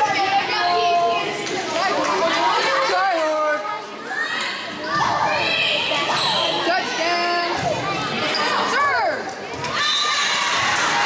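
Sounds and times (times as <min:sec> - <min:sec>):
players and spectators cheering: 0:07.8 - 0:11.0.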